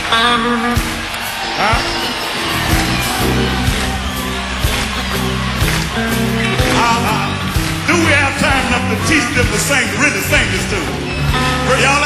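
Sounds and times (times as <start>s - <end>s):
bent electric guitar notes: 0.0s - 12.0s
electric blues band playing: 0.0s - 12.0s
steady bass line: 0.0s - 12.0s
drum hits: 1.7s - 9.8s.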